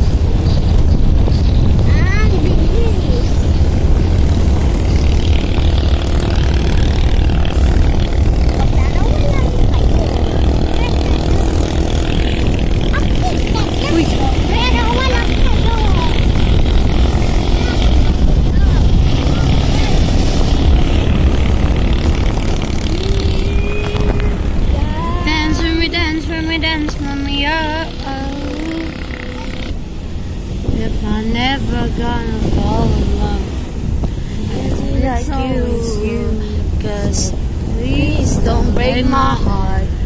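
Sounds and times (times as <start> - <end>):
vehicle engine and road rumble: 0.0 - 40.0.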